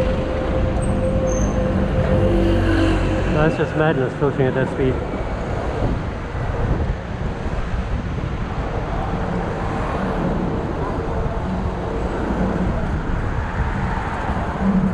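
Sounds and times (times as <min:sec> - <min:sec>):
car engines running: 0:00.0 - 0:14.9
road traffic: 0:00.0 - 0:14.9
wind buffeting microphone: 0:00.0 - 0:14.9.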